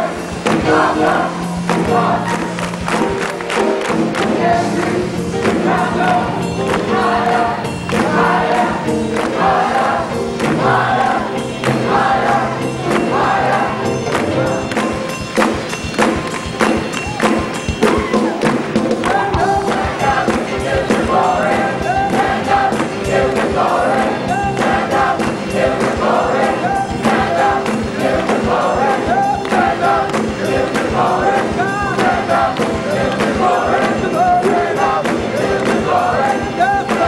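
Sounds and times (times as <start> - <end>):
gospel choir singing: 0.0 - 37.0
piano accompaniment: 0.0 - 37.0
steady beat: 0.0 - 37.0.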